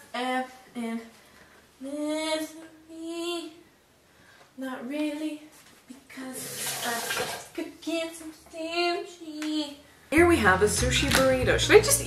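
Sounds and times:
woman singing wordlessly: 0.0 - 1.2, 1.8 - 3.6, 4.6 - 12.0.

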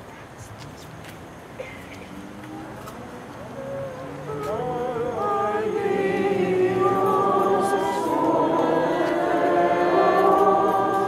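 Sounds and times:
choir singing a cappella: 2.6 - 11.0.

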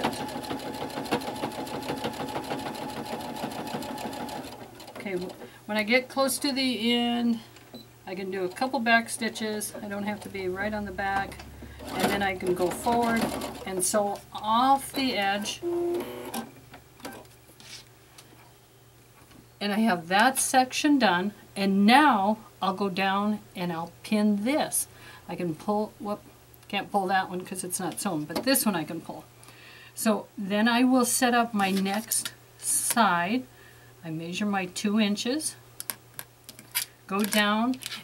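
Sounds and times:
sewing machine running: 0.0 - 5.0, 11.8 - 13.7.

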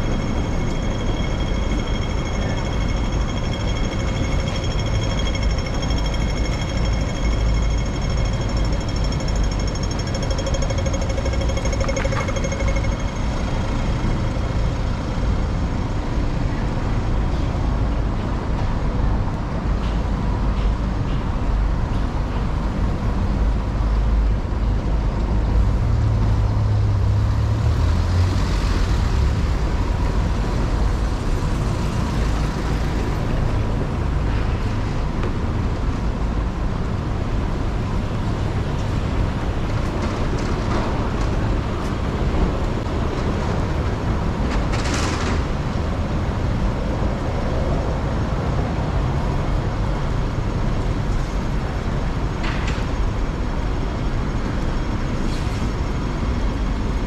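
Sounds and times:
pedestrian crossing signal tone: 0.0 - 15.7
road traffic rumble: 0.0 - 57.0.

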